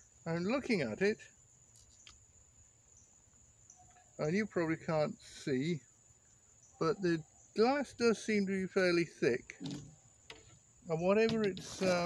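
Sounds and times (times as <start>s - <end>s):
high-pitched insect drone: 6.6s - 12.0s.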